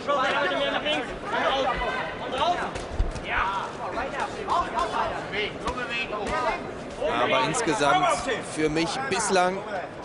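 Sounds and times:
men talking in a hall: 0.0s - 10.0s.

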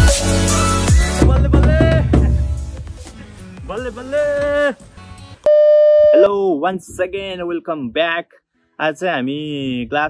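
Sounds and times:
electronic test tone: 5.5s - 6.3s.

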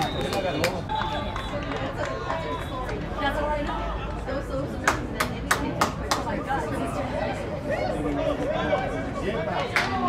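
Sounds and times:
voices calling out and chattering: 0.0s - 10.0s.

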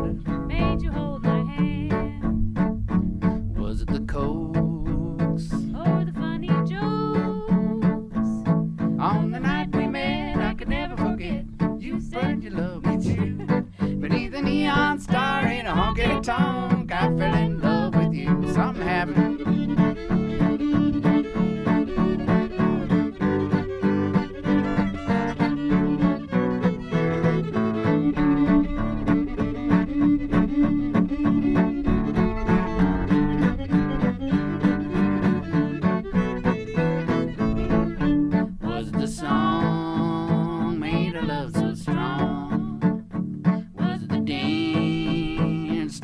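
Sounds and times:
acoustic guitar strumming: 0.0s - 46.0s
fiddle playing melody: 0.0s - 46.0s.

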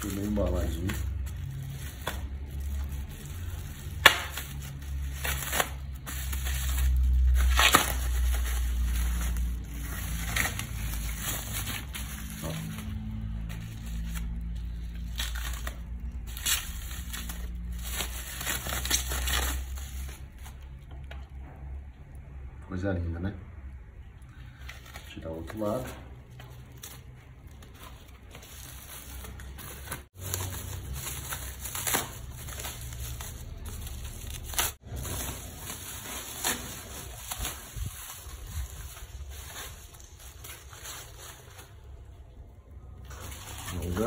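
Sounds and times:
plastic wrap crinkling and tearing: 0.0s - 20.9s, 24.3s - 44.0s.

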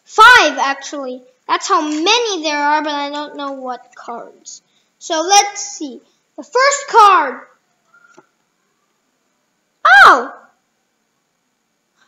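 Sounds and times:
child exclaiming: 0.1s - 7.6s, 9.8s - 10.6s.

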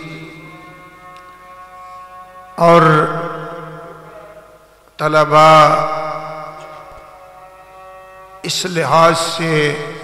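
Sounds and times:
man chanting a sermon: 0.0s - 10.0s.

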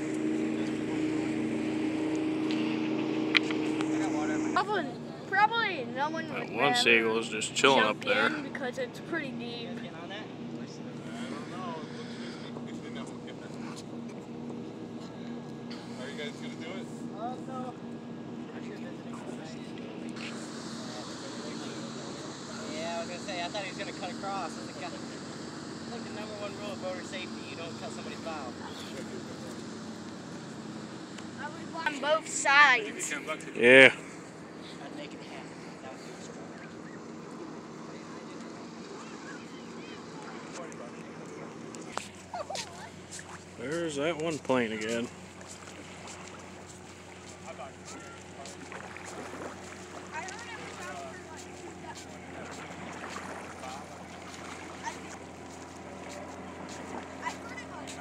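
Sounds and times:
boat engine humming: 0.0s - 58.0s
faint voices: 0.0s - 58.0s.

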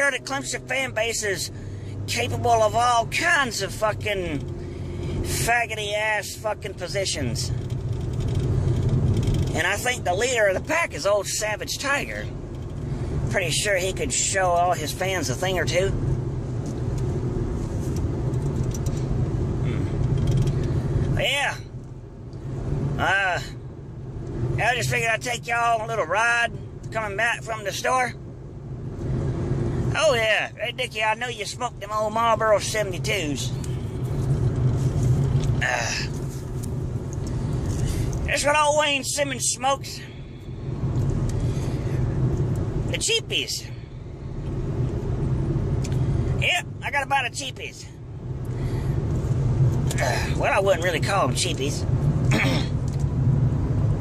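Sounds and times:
car engine and road rumble: 0.0s - 54.0s
person clearing throat: 52.3s - 52.8s.

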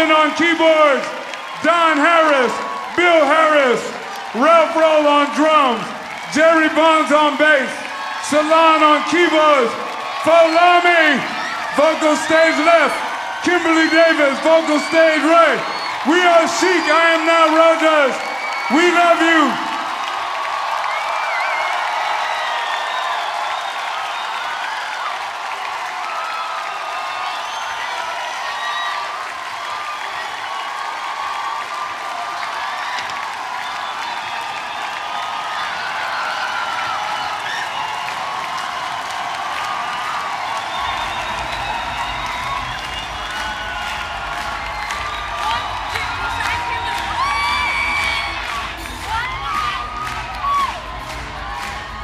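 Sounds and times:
crowd cheering and applauding: 0.0s - 52.0s.

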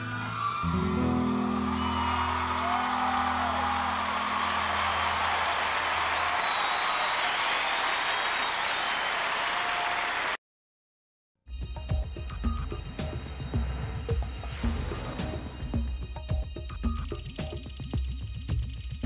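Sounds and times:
audience applauding and cheering: 0.0s - 10.4s.

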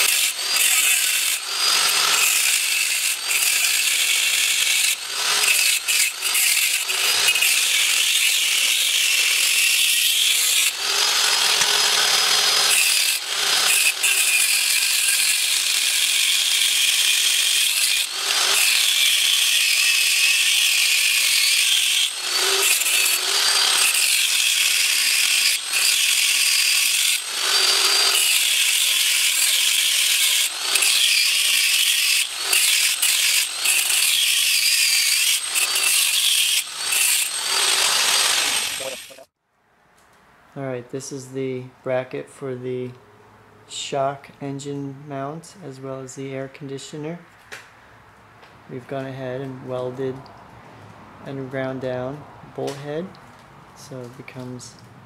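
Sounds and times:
angle grinder cutting metal: 0.0s - 39.3s.

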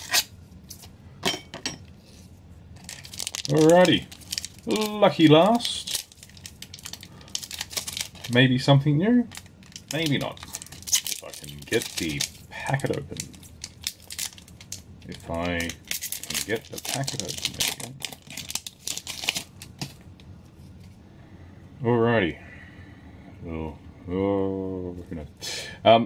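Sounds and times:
foil wrapper crinkling: 2.8s - 8.6s, 9.2s - 20.0s.

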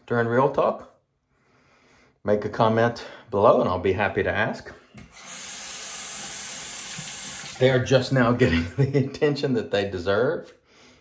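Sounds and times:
water running from tap: 5.1s - 8.1s.

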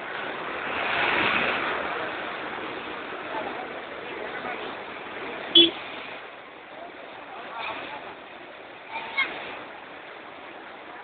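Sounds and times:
rush of open vehicle travelling: 0.0s - 11.0s.

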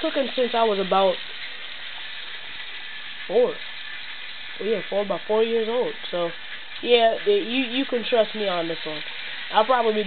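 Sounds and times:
oil sizzling deep-frying: 0.0s - 10.0s.

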